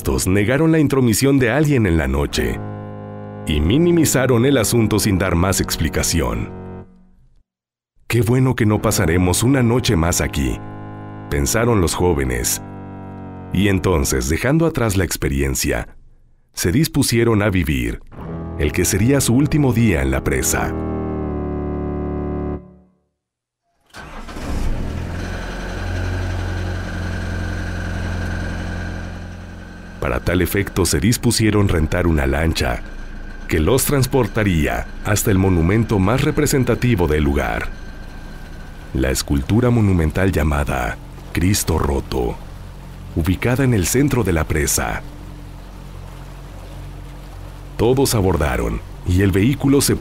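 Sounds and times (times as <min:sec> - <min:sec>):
motorboat engine starting and idling: 0:00.0 - 0:07.3, 0:08.4 - 0:14.5, 0:18.1 - 0:22.8, 0:23.8 - 0:50.0
soft wash of water: 0:24.4 - 0:50.0.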